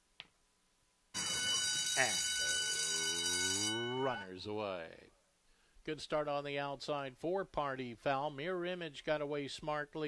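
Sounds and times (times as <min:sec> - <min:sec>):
starting gate bell ringing: 0:01.2 - 0:04.4.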